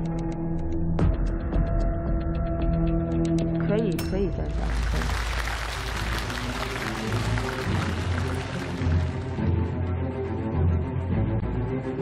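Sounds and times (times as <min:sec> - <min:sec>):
audience applause: 0:04.5 - 0:09.6.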